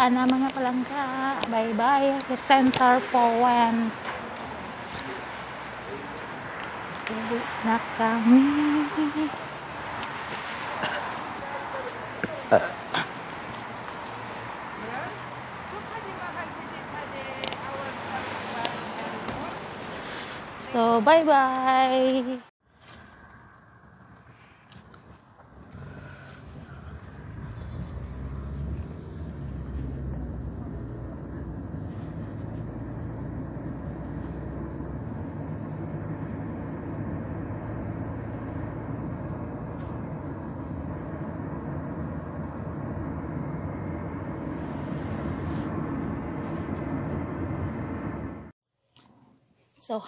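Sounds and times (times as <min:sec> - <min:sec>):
car engine and road noise: 0:00.0 - 0:49.4.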